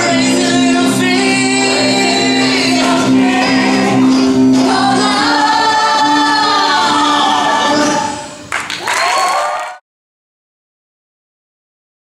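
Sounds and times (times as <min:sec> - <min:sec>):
person singing: 0:00.0 - 0:08.3
audience applause and cheering: 0:08.4 - 0:09.8.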